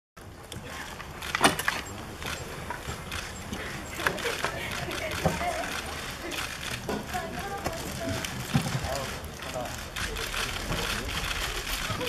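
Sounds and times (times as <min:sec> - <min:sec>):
camera shutters clicking: 0:01.0 - 0:12.0.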